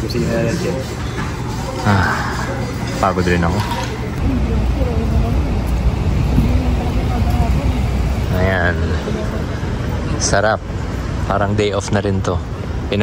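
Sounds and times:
city road traffic rumble: 0.0s - 13.0s.

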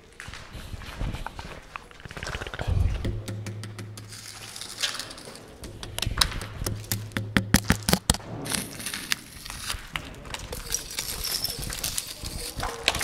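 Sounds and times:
stick tapping on plaster wall: 3.0s - 8.2s.

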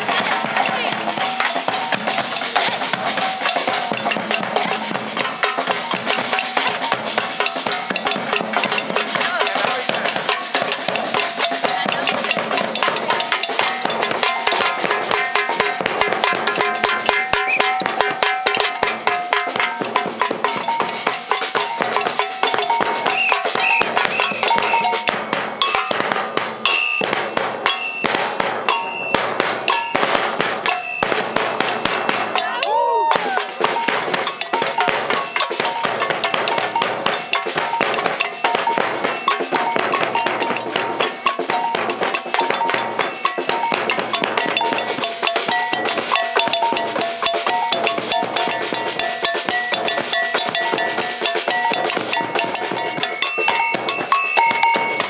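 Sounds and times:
double cowbell: 0.0s - 55.0s
snare drums: 0.0s - 55.0s.

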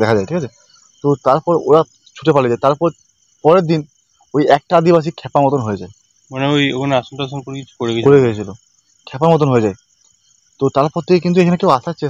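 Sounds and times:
man speaking: 0.0s - 9.8s, 10.6s - 12.0s
crickets trilling: 0.0s - 12.0s.

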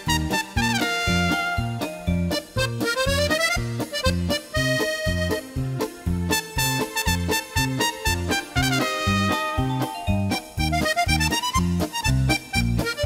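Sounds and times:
accordion melody: 0.0s - 13.0s
bouncing bass and drum beat: 0.0s - 13.0s.

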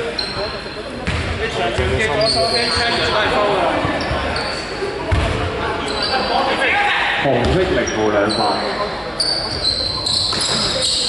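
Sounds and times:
basketball bouncing in hall: 0.4s - 3.0s, 3.8s - 5.6s, 7.4s - 7.8s
short high squeaks: 9.2s - 11.0s.

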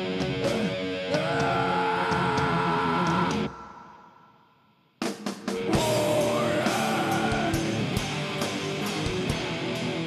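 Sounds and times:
heavy metal band playing: 0.0s - 3.5s, 5.4s - 10.0s.

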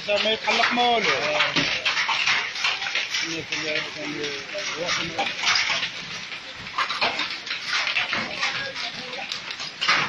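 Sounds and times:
heavy hail and rain: 0.0s - 10.0s.

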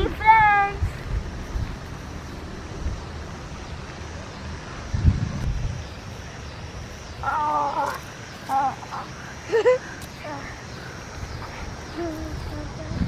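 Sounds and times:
wind buffeting microphone: 0.0s - 7.4s, 10.6s - 13.0s.

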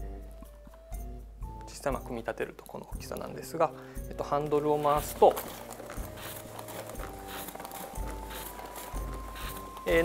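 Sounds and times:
cardboard crank clacking: 4.4s - 10.0s.

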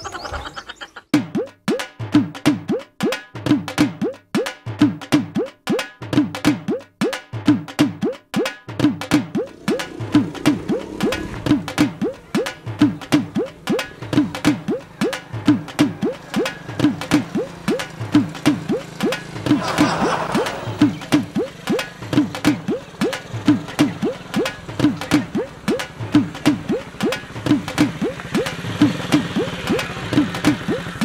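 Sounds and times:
comic background music: 8.0s - 31.0s.

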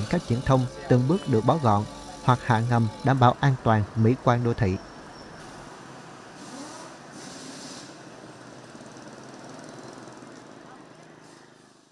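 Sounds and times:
motorbikes passing: 0.0s - 6.3s, 8.0s - 11.2s.

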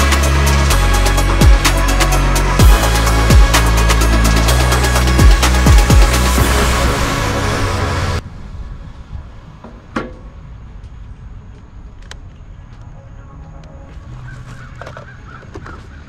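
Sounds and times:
low wind rumble: 0.0s - 15.6s
faint bird calls: 12.5s - 16.0s.

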